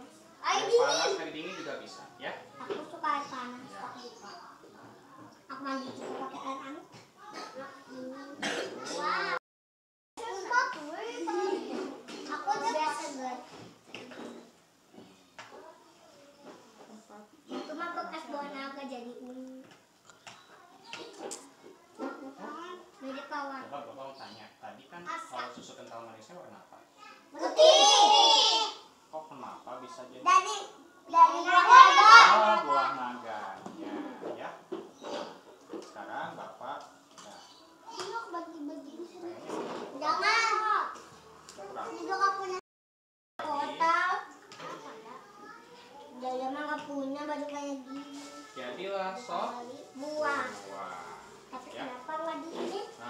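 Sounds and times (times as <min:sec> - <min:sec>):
young children talking: 0:00.0 - 0:09.4, 0:10.2 - 0:14.5, 0:20.4 - 0:23.7, 0:26.9 - 0:29.0, 0:30.2 - 0:33.0, 0:37.4 - 0:42.6, 0:43.4 - 0:53.0.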